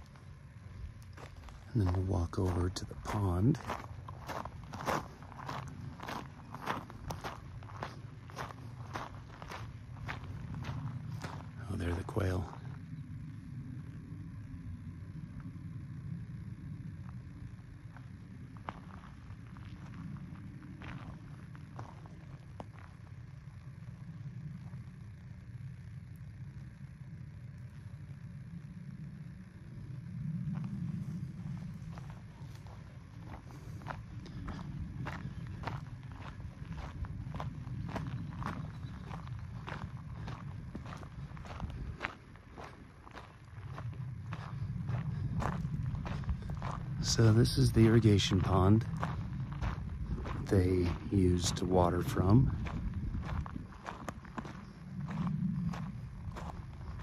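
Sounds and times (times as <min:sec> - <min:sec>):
low steady rumble: 0:00.0 - 0:57.0
footsteps crunching on gravel: 0:01.0 - 0:12.8, 0:17.9 - 0:23.3, 0:30.5 - 0:57.0.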